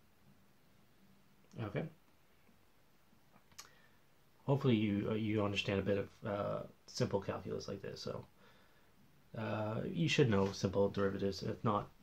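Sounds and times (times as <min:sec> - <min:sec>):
faint click: 0:03.3 - 0:03.8.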